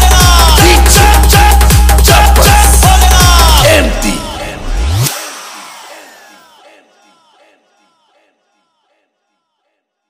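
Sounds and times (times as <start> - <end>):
electronic dance music: 0.0 - 9.9.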